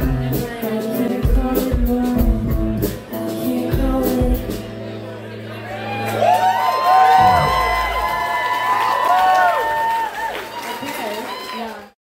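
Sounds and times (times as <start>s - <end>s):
audience cheering: 5.6s - 12.0s
high whoops and shouts: 5.7s - 10.6s
low bass note sliding downward: 5.8s - 9.1s.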